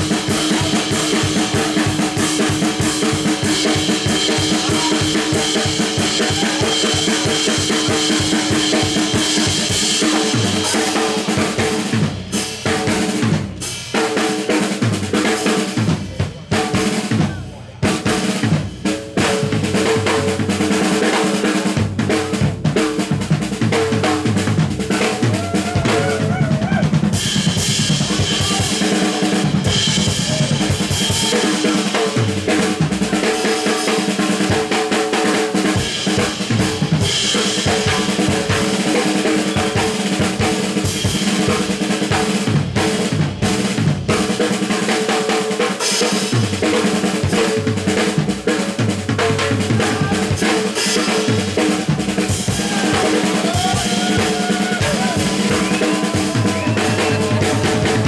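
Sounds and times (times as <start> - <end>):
drum kit solo: 0.0 - 58.0.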